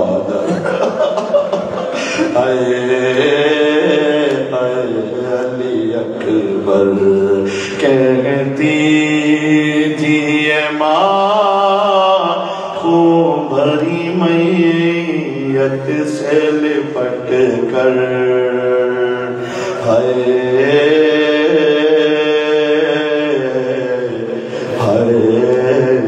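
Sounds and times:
man chanting a lament: 0.0 - 26.0
breaths: 1.8 - 2.4, 7.4 - 7.8, 12.4 - 12.8, 19.3 - 19.8, 24.3 - 24.8.

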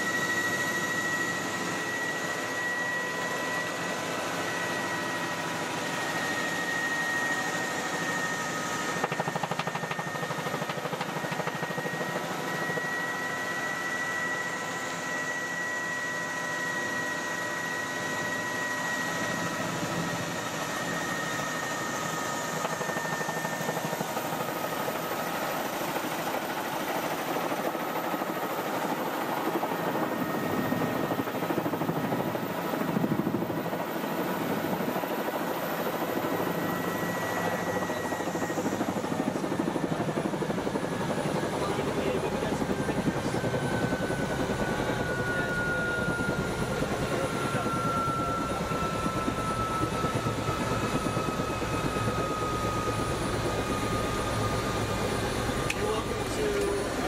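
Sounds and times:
helicopter rotor and engine: 0.0 - 57.0
steady whine: 0.0 - 57.0.

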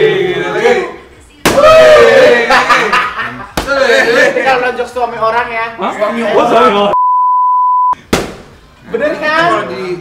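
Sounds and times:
censor bleep: 7.0 - 8.0
sharp smack: 8.1 - 8.5.

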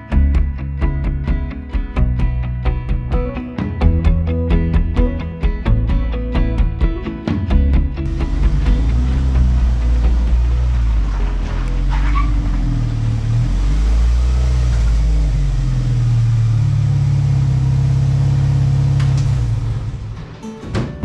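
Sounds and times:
race car engine running at low speed: 7.6 - 20.4.

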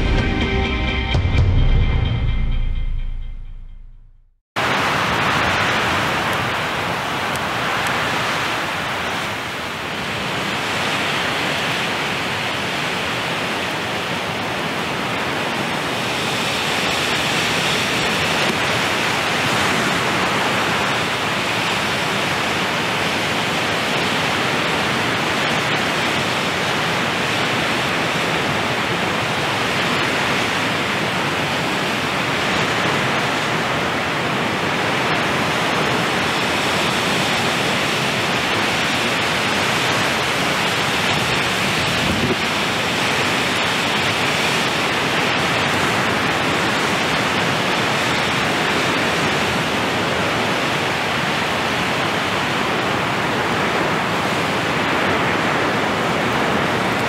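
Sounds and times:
loud steady rushing noise: 0.0 - 57.0.

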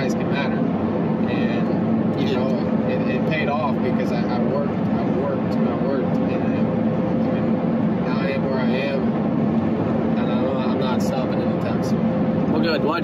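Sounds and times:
car engine drone: 0.0 - 13.0
road and tyre noise: 0.0 - 13.0.

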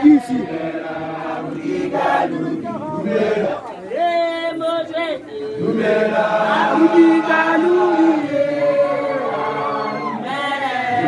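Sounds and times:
group chanting song: 0.0 - 3.8, 5.3 - 11.0.

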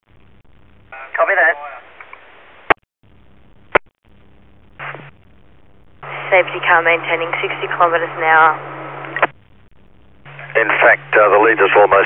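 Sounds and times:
radio noise burst with hum: 0.1 - 12.0
radio channel hiss: 0.9 - 2.7, 4.8 - 5.2, 6.0 - 9.3, 10.2 - 12.0.

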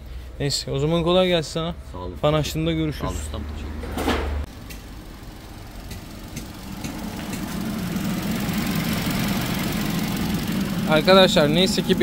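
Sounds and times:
car engine idling: 4.4 - 12.0
radiator fan rushing: 4.5 - 12.0.

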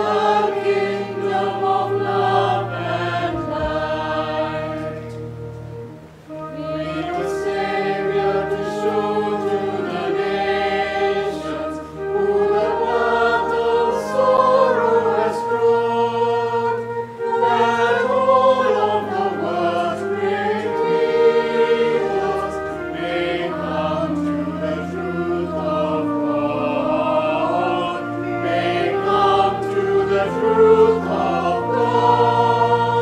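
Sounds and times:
congregation and choir singing hymn: 0.0 - 33.0
sustained low accompaniment: 0.0 - 33.0.

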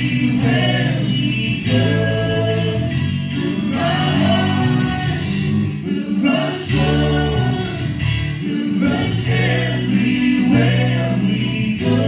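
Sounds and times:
guitar accompaniment: 0.0 - 12.0
people singing together: 0.0 - 12.0.

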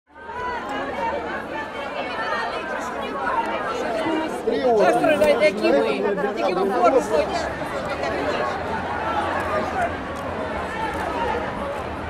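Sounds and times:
crowd chatter: 0.1 - 12.0.

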